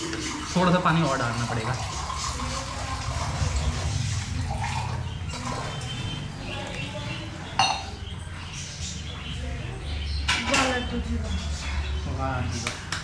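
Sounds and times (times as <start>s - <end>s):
water being poured: 0.0s - 6.0s.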